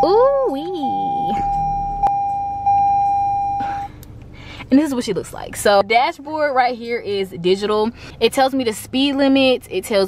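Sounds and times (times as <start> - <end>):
high electronic tone: 0.0 - 3.6.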